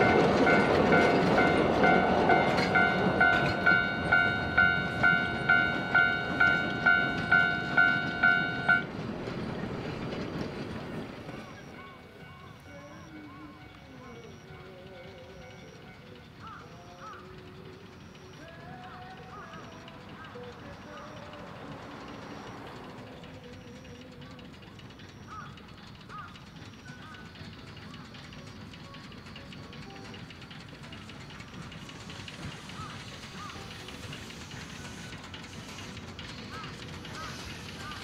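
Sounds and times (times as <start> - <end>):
park music: 0.0 - 8.9, 11.4 - 38.0
train rumble: 0.0 - 38.0
faint voices: 11.3 - 38.0.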